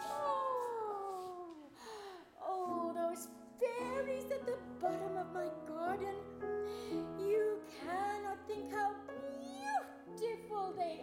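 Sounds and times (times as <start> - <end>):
woman's voice sliding down: 0.0 - 1.8.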